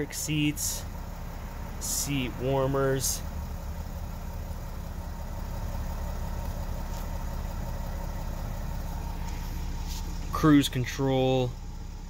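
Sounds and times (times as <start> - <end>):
van engine idling: 0.0 - 12.0.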